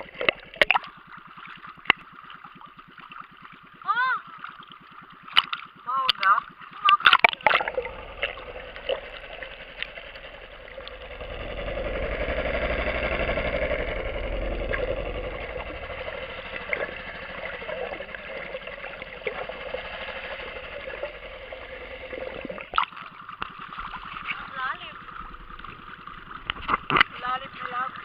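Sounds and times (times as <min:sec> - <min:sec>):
boat engine heard underwater: 0:00.0 - 0:28.0.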